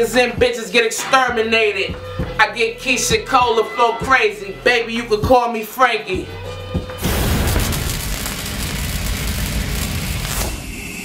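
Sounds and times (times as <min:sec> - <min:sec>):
rumbling whoosh: 0:07.0 - 0:10.7
sharp hit: 0:07.0 - 0:10.8.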